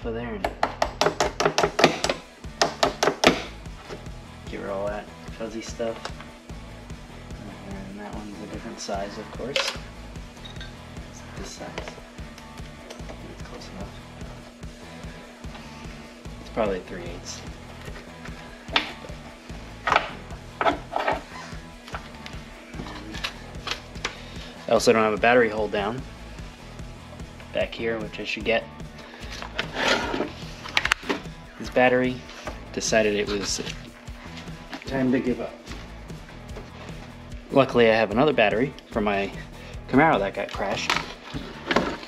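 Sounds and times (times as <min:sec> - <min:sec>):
background music: 0:00.0 - 0:42.0.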